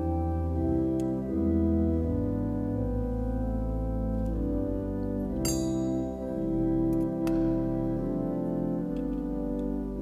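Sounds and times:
keyboard playing held chords: 0:00.0 - 0:10.0.

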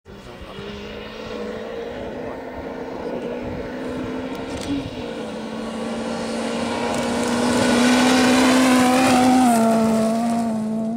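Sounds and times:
rally car engine passing: 0:00.1 - 0:10.9.

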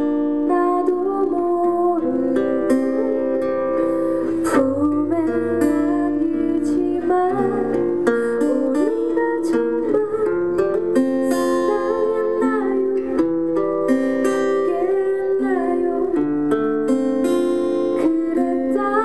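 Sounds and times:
woman singing a sad ballad: 0:00.0 - 0:13.2, 0:14.2 - 0:16.3, 0:17.2 - 0:19.0
strummed acoustic guitar: 0:00.0 - 0:19.0.

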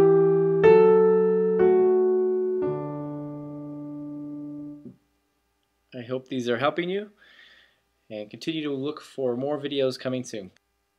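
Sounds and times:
piano octave held: 0:00.0 - 0:05.0.

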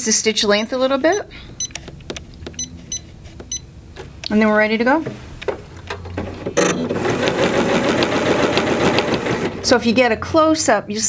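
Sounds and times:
sewing machine stitching: 0:06.2 - 0:09.8.

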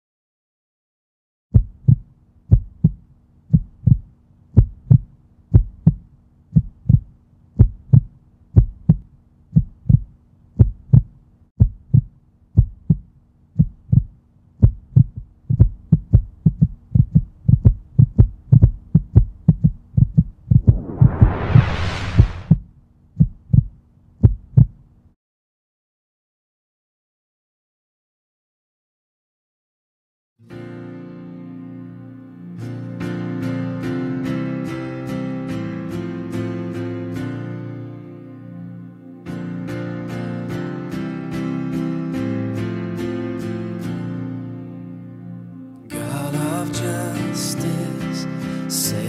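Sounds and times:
heartbeat thumps: 0:01.5 - 0:22.6, 0:23.2 - 0:24.8
whoosh: 0:20.5 - 0:22.6.

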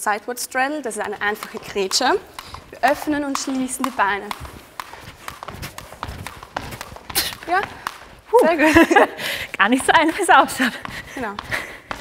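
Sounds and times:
skipping rope slapping floor: 0:00.2 - 0:12.0
sneakers landing: 0:00.9 - 0:12.0.

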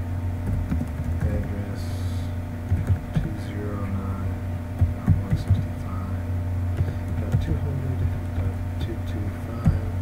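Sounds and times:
low electrical hum: 0:00.0 - 0:10.0
keyboard typing: 0:00.4 - 0:01.6, 0:02.7 - 0:03.3.

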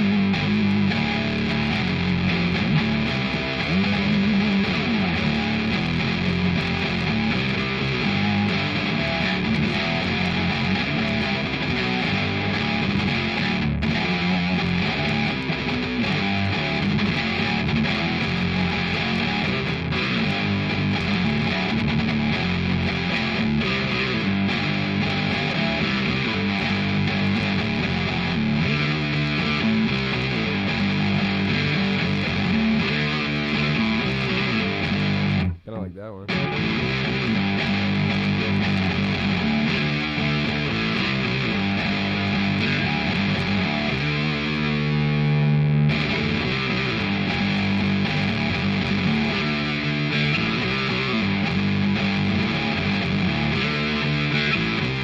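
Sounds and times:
distorted electric guitar riff: 0:00.0 - 0:55.0.

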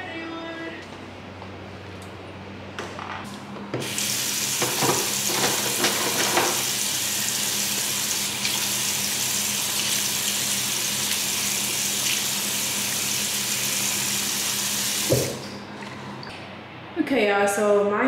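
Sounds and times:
faucet running into sink: 0:03.8 - 0:15.5.

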